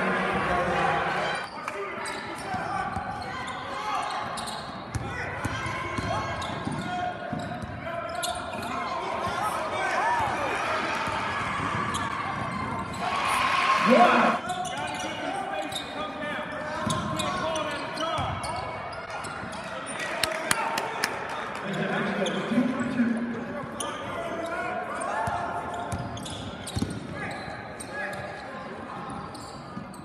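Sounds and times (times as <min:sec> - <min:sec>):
crowd cheering: 0:09.1 - 0:14.4, 0:19.6 - 0:22.4.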